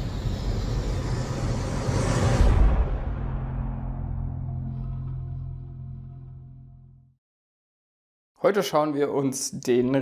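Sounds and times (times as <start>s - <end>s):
dense rushing whoosh: 0.0s - 4.9s
deep low drone: 0.0s - 7.2s.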